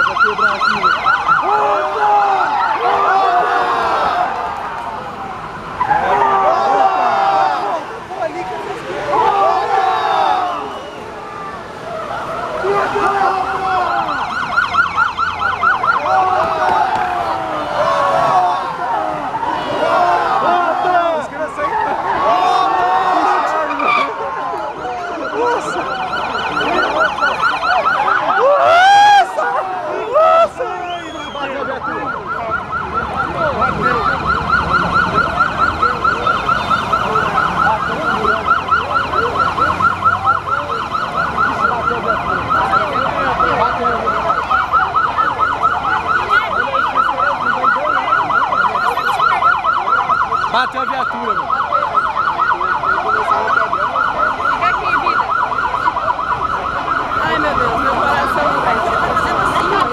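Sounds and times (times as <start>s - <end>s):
crowd voices: 0.0s - 59.9s
police sirens: 0.0s - 59.9s.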